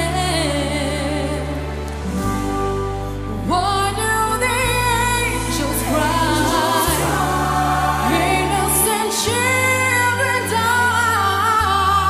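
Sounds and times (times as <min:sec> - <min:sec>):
woman singing pop ballad: 0:00.0 - 0:02.4, 0:03.0 - 0:12.0
backing music with low bass: 0:00.0 - 0:12.0.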